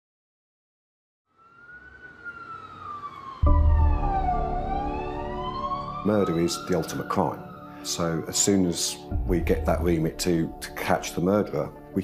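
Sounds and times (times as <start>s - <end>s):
emergency vehicle siren wailing: 1.3s - 10.0s
deep boom: 3.4s - 6.0s
held musical chord: 3.4s - 12.0s.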